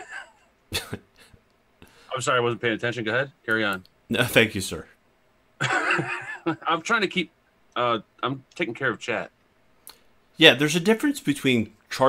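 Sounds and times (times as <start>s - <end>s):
man laughing: 0.0s - 1.4s, 5.6s - 6.8s
faint breathing: 1.2s - 2.2s.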